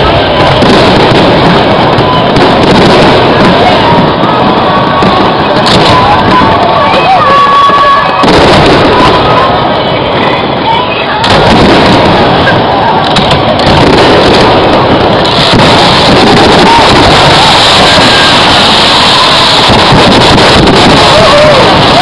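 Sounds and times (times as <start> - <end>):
people's voices: 0.0 - 22.0
firework shells bursting: 5.0 - 6.7, 11.2 - 22.0.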